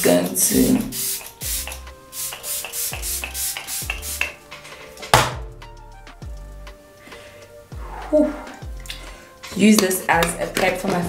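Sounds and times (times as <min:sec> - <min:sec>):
background music with beat: 0:00.3 - 0:11.0
pump spray misting: 0:00.9 - 0:04.4.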